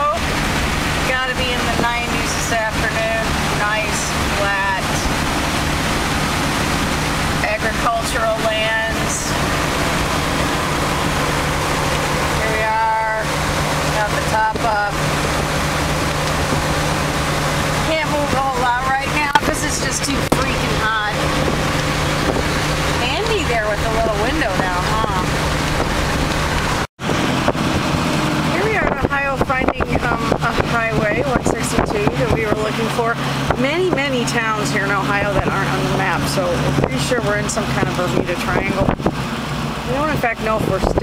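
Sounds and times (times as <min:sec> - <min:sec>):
low engine hum: 0:00.0 - 0:41.0
road and wind noise: 0:00.0 - 0:41.0
indistinct voices: 0:07.4 - 0:15.1, 0:17.7 - 0:25.5.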